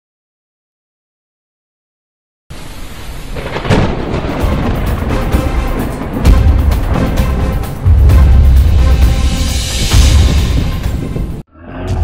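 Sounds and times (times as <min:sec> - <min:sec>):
steady rain: 0:02.5 - 0:11.1
low rolling thunder rumble: 0:02.9 - 0:11.4
sharp thunderclap: 0:03.0 - 0:11.4.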